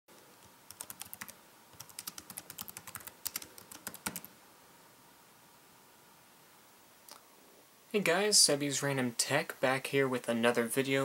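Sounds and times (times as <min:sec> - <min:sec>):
keyboard typing clicks: 0:00.7 - 0:04.3.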